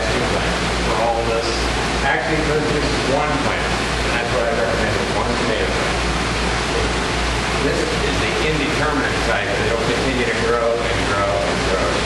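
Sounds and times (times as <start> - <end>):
steady rushing noise: 0.0 - 12.0.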